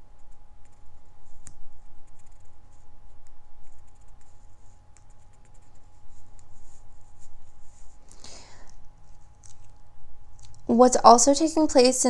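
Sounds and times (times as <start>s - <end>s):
fingertips rubbing cards: 0.1s - 8.4s.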